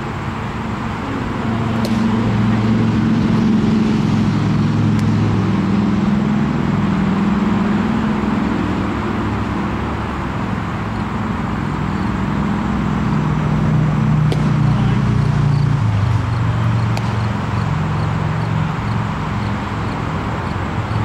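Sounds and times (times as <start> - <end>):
engine-like low drone: 0.0 - 21.0.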